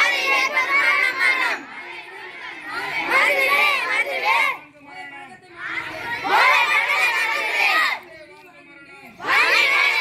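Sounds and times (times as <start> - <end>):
crowd of boys shouting in unison: 0.0 - 4.6, 5.6 - 8.0, 9.2 - 10.0.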